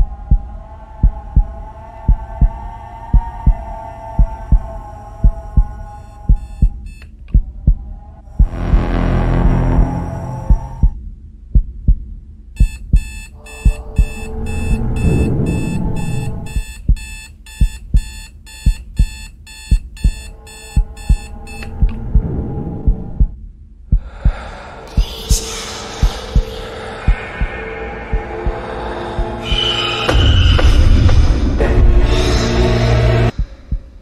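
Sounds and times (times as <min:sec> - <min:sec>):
low double thump heartbeat: 0:00.0 - 0:32.2, 0:33.3 - 0:34.0
rapid high electronic beeping: 0:12.6 - 0:21.8.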